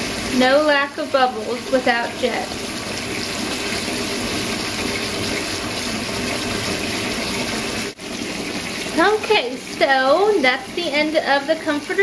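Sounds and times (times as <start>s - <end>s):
bathtub faucet running: 0.0s - 12.0s.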